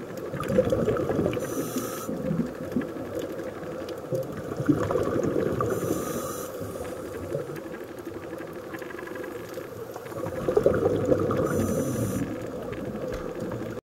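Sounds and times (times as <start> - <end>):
rumbling exhaled bubbles: 0.0 - 7.7, 9.3 - 13.8
regulator inhalation hiss: 1.4 - 2.2, 5.7 - 7.2, 11.4 - 12.4.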